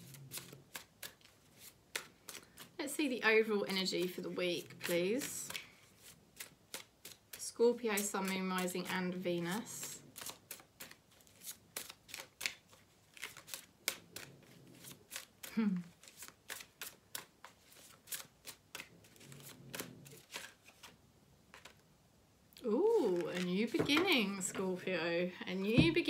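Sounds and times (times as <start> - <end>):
cards being shuffled: 0.0 - 2.8, 3.8 - 21.8, 22.9 - 24.8.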